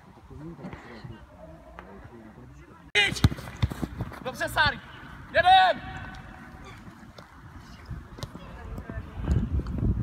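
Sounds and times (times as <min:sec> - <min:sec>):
football being kicked: 0:03.0 - 0:04.2.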